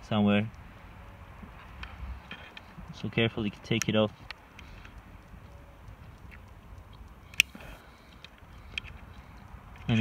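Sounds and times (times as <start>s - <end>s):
small metal clicks: 1.7s - 10.0s
sharp metallic click: 3.5s - 9.6s.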